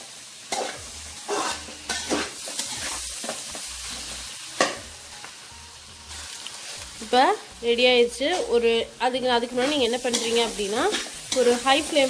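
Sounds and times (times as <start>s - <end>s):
food sizzling in a pan: 0.0s - 12.0s
metal spoon scraping a pan: 0.5s - 4.8s, 9.5s - 12.0s.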